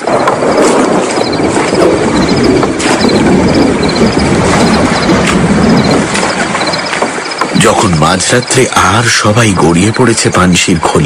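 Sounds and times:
rush of water and hull: 0.0 - 11.0.

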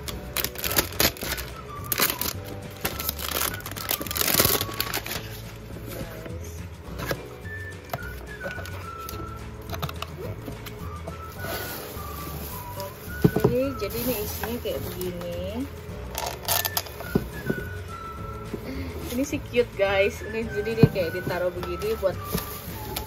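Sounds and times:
plastic wrap crinkling and tearing: 0.0 - 5.9, 8.0 - 15.2, 16.1 - 17.8, 20.8 - 23.0
background music with low beat: 0.0 - 23.0
plastic bag rustling: 0.0 - 23.0.

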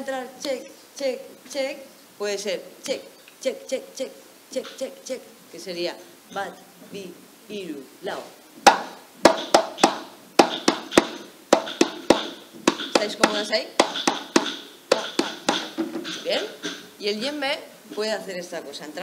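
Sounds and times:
woman speaking: 0.0 - 8.4, 12.9 - 13.9, 16.2 - 19.0
djembe struck by hand: 8.6 - 16.8.

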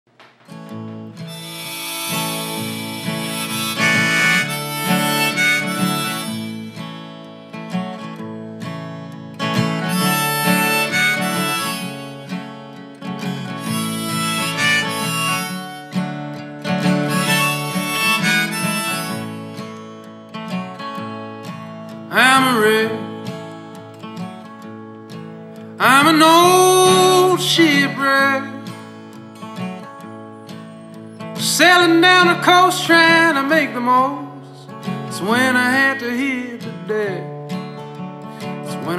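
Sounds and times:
strummed acoustic guitar: 0.1 - 38.9
harmonica melody: 1.0 - 36.6
man singing: 22.1 - 23.5, 25.8 - 28.9, 31.4 - 37.4, 38.6 - 38.9.

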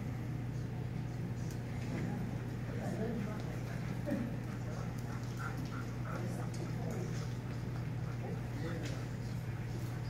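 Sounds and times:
steady low hum: 0.0 - 10.0
faint voices: 1.4 - 10.0.

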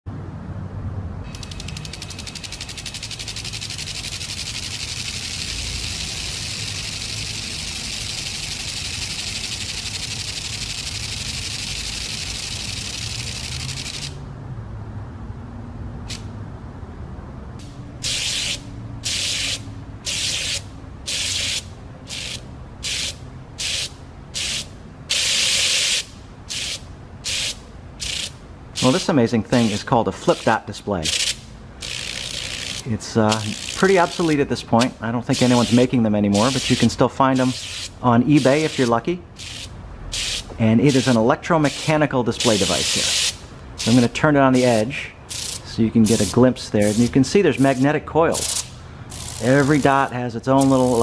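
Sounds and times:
flip-dot display clicking rattle: 1.3 - 14.2.

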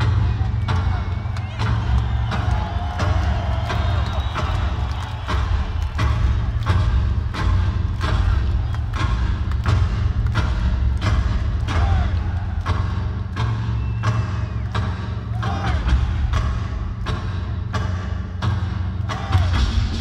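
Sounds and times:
drums struck hard: 0.0 - 20.0.

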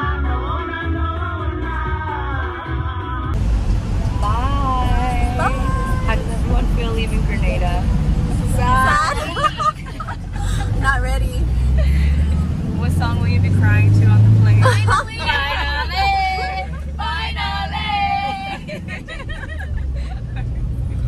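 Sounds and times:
van engine drone: 0.0 - 21.0
women chattering and laughing: 4.2 - 7.8, 8.4 - 12.9, 13.6 - 21.0.

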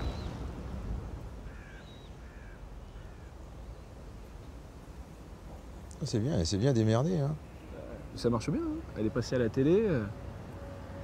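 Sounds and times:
birds calling: 0.0 - 4.4.

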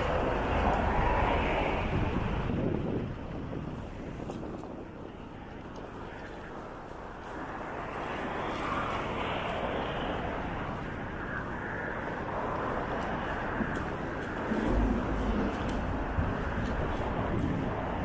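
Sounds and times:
car engines and tyres: 0.0 - 18.0
deep vehicle rumble: 0.0 - 18.0.

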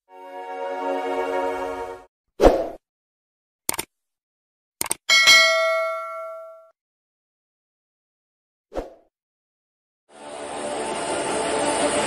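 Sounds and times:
bright bell chime: 5.1 - 6.7.

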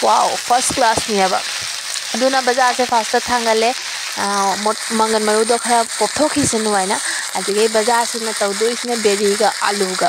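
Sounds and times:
person talking: 0.0 - 1.5, 2.1 - 10.0
vegetables sizzling in oil: 0.0 - 10.0.

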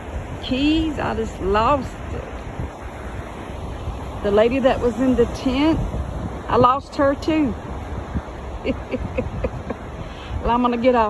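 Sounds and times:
surf on a beach: 0.0 - 11.0
wind on microphone: 0.0 - 11.0.

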